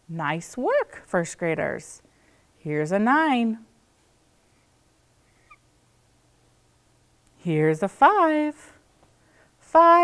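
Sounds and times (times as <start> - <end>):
marker squeaking on whiteboard: 5.4 - 5.6.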